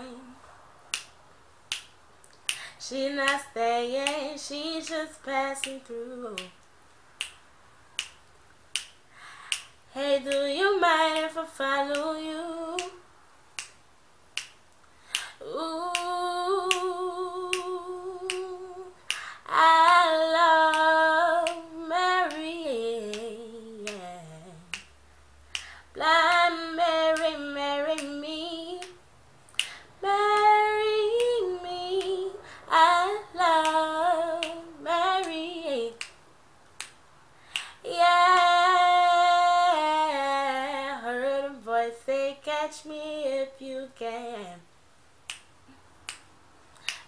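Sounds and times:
woman singing unaccompanied: 0.0 - 0.4, 2.5 - 6.6, 9.5 - 13.1, 15.1 - 24.9, 25.6 - 29.0, 29.6 - 36.2, 37.6 - 44.7
finger snaps: 0.9 - 7.4, 8.0 - 13.0, 13.6 - 36.2, 36.8 - 37.8, 45.2 - 47.0.

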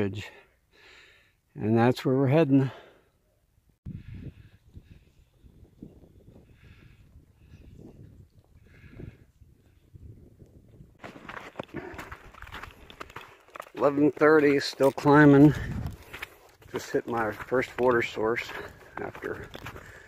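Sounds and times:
footsteps crunching in snow: 11.0 - 20.0.

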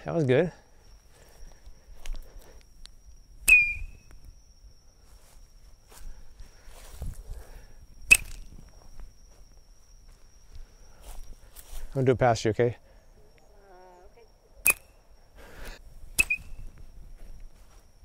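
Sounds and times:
rubber band snap with squeak: 3.5 - 3.9, 14.6 - 14.9, 16.2 - 16.6.

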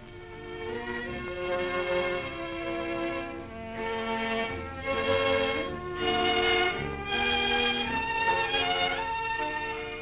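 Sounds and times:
string ensemble playing slow notes: 0.0 - 10.0.

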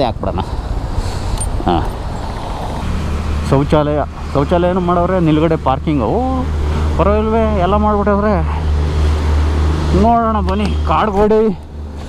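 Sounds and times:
steady low rumble: 0.0 - 12.0
man's voice in drawn-out phrases: 3.4 - 8.7, 9.9 - 11.6.

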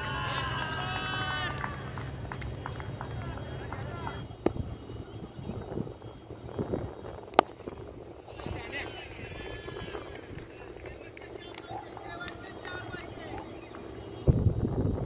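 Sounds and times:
distant voices: 0.0 - 15.0
open-air ground noise: 0.0 - 15.0.

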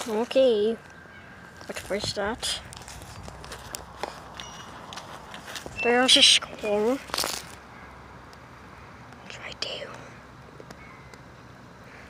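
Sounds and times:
faint outdoor background: 0.0 - 12.0
person whispering: 9.2 - 10.2.

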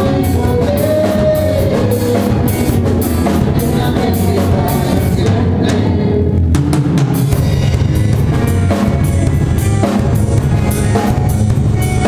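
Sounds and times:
live band playing folk music: 0.0 - 12.0
sustained guitar notes: 0.0 - 12.0.

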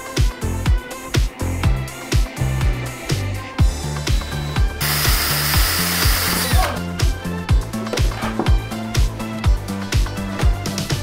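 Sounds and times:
music with steady beat: 0.0 - 11.0
power drill drilling plastic: 4.8 - 6.8.

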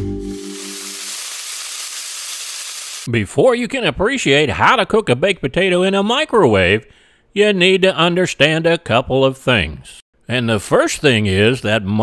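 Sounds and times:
steady hiss: 0.2 - 3.1.

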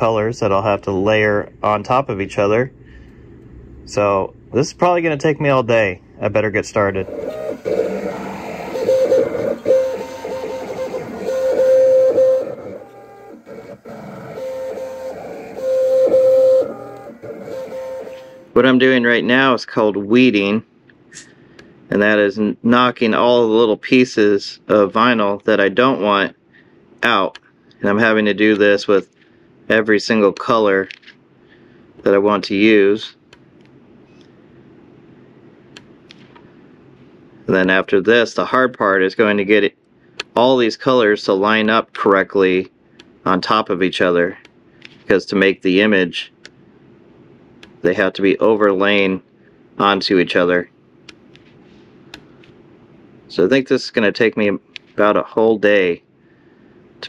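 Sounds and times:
low steady hum: 0.0 - 57.0
plotter motors whining: 6.3 - 18.5.

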